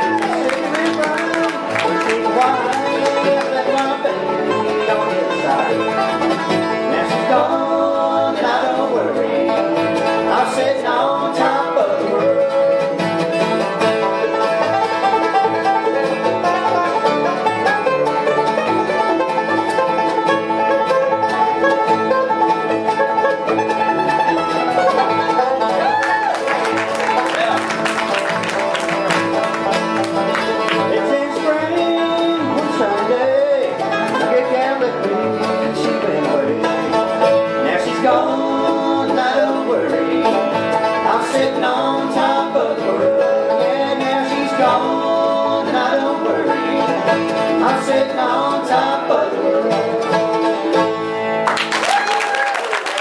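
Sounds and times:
banjo lead: 0.0 - 53.0
bluegrass band playing: 0.0 - 53.0.

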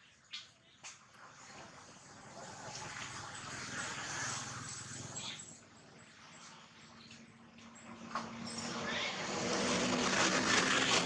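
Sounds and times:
vehicle passing by: 1.2 - 11.0.

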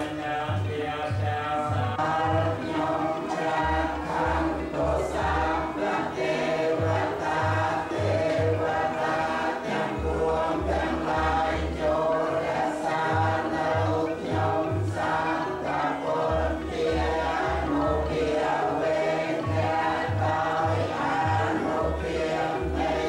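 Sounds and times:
group chanting on held notes: 0.0 - 23.0.

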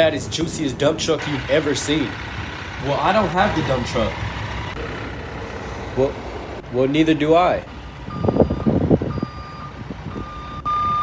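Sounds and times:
truck reversing alarm beeping: 8.0 - 11.0.

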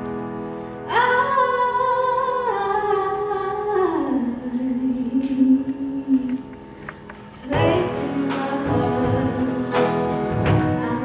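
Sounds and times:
grand piano chords: 0.0 - 11.0
woman singing: 0.9 - 6.4, 7.4 - 11.0.

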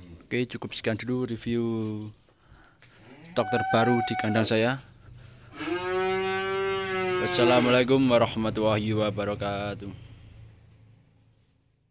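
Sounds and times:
calf mooing: 3.1 - 4.5, 5.5 - 7.8.

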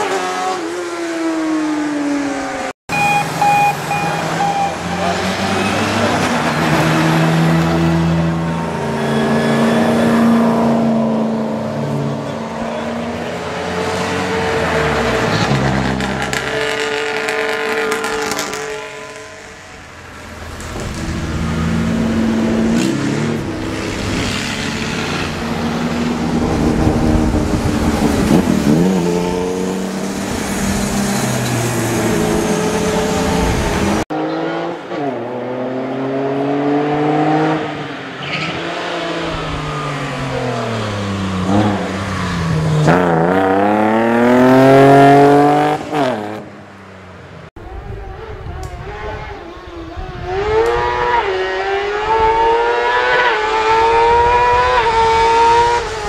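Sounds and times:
car engine revving: 2.9 - 46.6, 47.7 - 56.0
race cars accelerating past: 3.0 - 46.5.

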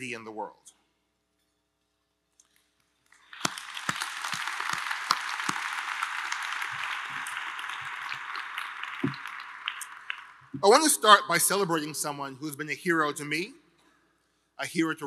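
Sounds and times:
audience applauding: 3.2 - 11.2.

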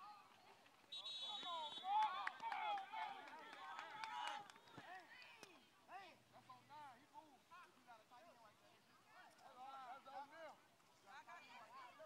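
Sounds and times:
referee's whistle: 0.9 - 2.2
crowd shouting and cheering: 1.1 - 5.0.

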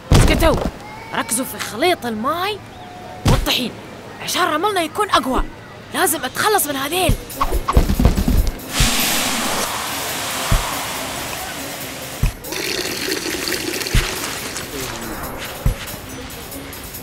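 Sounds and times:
background music with low beat: 7.1 - 17.0
soft hiss: 8.6 - 12.5
powder pouring: 12.5 - 15.5.

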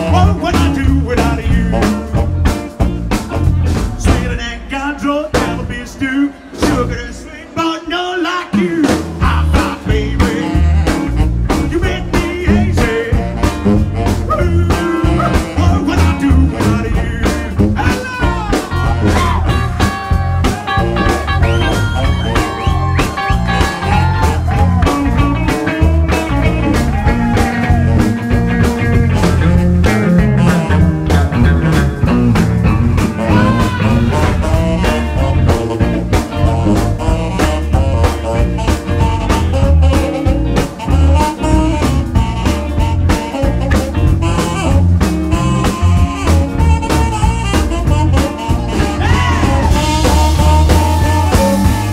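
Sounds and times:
man singing: 0.0 - 2.2, 3.1 - 29.2, 33.0 - 35.9, 42.8 - 51.9
drum kit beat: 0.0 - 7.3, 8.6 - 51.9
electric bass: 0.0 - 7.4, 8.6 - 51.9
electric guitar: 0.0 - 7.4, 8.6 - 51.9
saxophone: 9.2 - 51.9.

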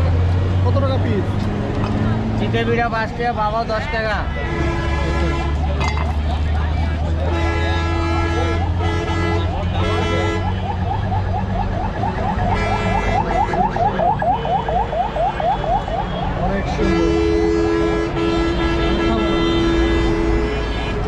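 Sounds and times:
car horn blasts: 4.4 - 5.7, 7.2 - 10.7, 12.4 - 15.2, 15.8 - 21.0.

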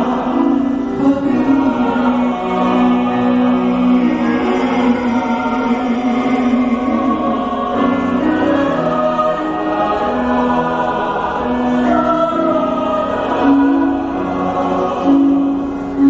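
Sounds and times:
male soloist singing: 0.0 - 16.0
mixed choir singing chords: 0.0 - 16.0.

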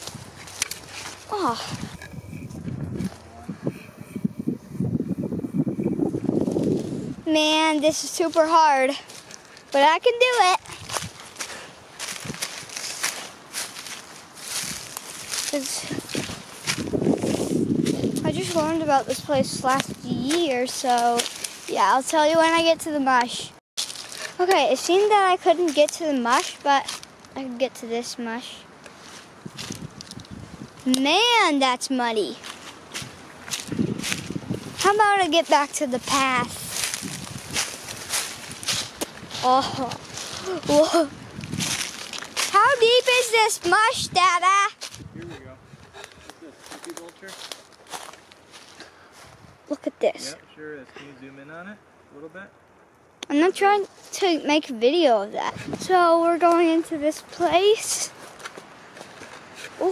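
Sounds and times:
footsteps through dry leaves: 0.0 - 2.0, 6.3 - 7.2, 8.3 - 19.1, 19.7 - 21.8, 23.8 - 24.4, 25.6 - 27.4, 28.9 - 30.9, 32.3 - 43.4, 44.7 - 45.1, 46.0 - 49.5
stems rustling: 0.0 - 50.4, 53.2 - 59.9.

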